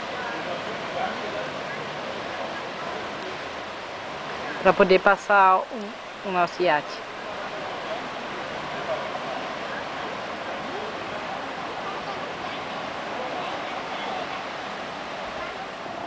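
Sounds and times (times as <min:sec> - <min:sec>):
faint voices: 0:00.0 - 0:16.0
water rushing: 0:00.0 - 0:16.0.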